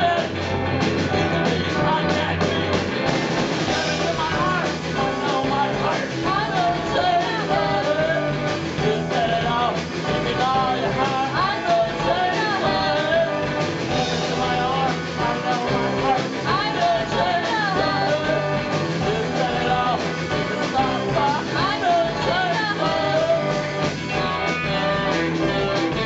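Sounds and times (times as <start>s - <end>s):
drum kit: 0.0s - 26.0s
electric guitar: 0.0s - 26.0s.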